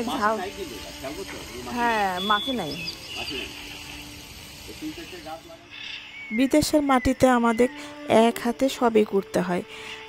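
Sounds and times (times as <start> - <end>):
hose spray nozzle hissing: 0.0 - 10.0.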